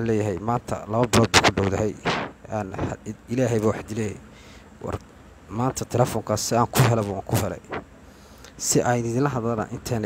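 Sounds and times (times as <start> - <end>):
man talking into microphone: 0.0 - 4.2, 4.8 - 7.8, 8.6 - 10.0.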